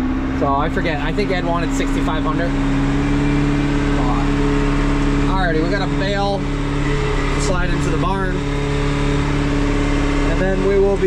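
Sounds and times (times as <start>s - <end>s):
tractor engine humming: 0.0s - 11.0s.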